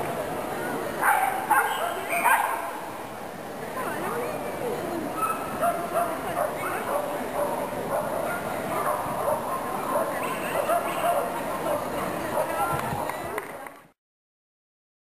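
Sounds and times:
voices in a large hall: 0.0s - 14.0s
dog barking: 1.0s - 2.7s, 5.2s - 11.8s.

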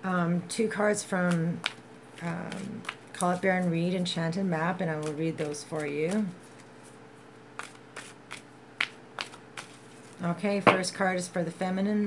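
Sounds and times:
cards being shuffled: 1.2s - 3.8s, 4.8s - 10.3s.

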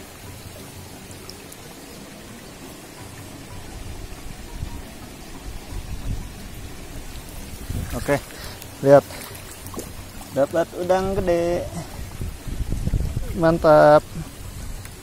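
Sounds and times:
water sloshing and splashing: 0.0s - 15.0s.

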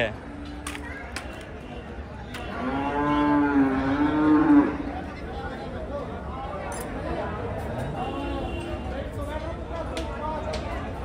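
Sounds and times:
cow mooing: 2.5s - 4.8s.

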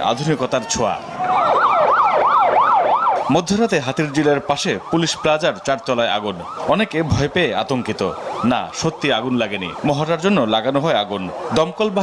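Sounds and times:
siren yelping: 0.3s - 12.0s.

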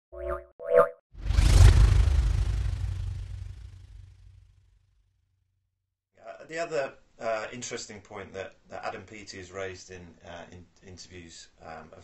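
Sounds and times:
whoosh with deep rumble: 1.2s - 4.9s.

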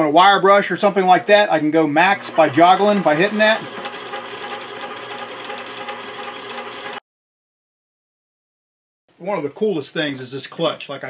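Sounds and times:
turntable motor whirring: 1.2s - 7.0s
wire brush scratching metal: 2.2s - 7.0s.

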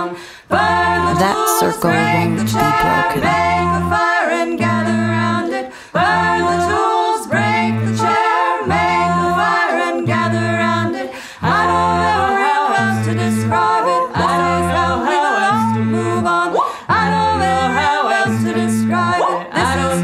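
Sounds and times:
a cappella voices singing: 0.0s - 20.0s.

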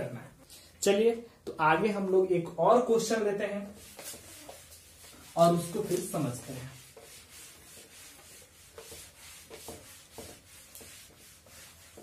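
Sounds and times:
rubbing strokes on writing surface: 3.6s - 12.0s.

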